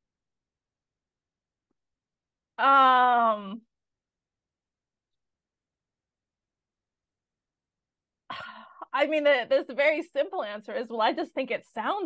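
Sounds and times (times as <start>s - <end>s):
woman speaking: 2.6s - 3.6s, 8.4s - 12.0s.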